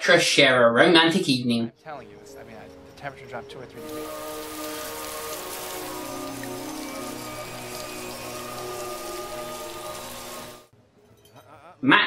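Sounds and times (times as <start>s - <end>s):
soft music of held notes: 1.8s - 11.6s
heavy rain falling: 3.4s - 10.7s.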